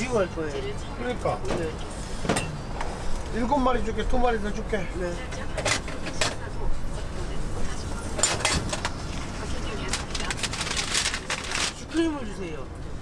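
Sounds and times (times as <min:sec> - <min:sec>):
low street hum: 0:00.0 - 0:13.0.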